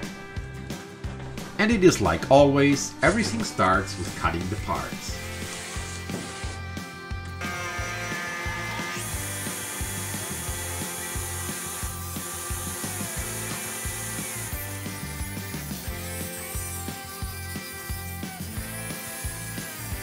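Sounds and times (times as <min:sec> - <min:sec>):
background music with beat: 0:00.0 - 0:07.4
table saw cutting wood: 0:03.0 - 0:20.0.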